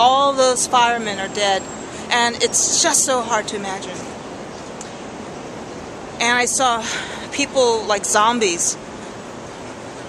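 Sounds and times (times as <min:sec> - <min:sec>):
distant traffic rush: 0:00.0 - 0:10.0.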